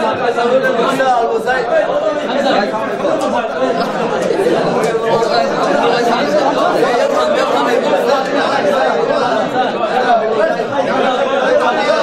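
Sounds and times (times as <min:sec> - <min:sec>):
crowd of men talking: 0:00.0 - 0:12.0.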